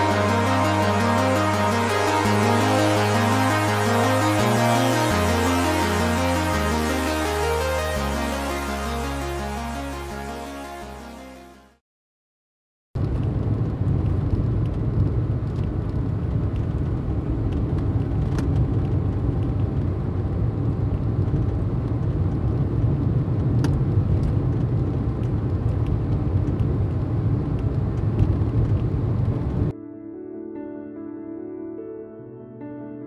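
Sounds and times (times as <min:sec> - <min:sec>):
engine and road noise rumble: 0:13.0 - 0:29.7.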